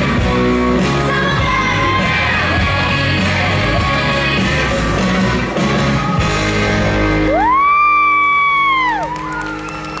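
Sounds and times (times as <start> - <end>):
dance music: 0.0 - 9.5
spectator cheering woo: 7.2 - 10.0.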